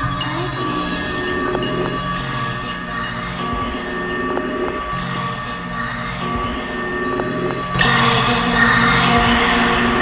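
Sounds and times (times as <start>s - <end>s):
experimental electronic music: 0.0s - 10.0s.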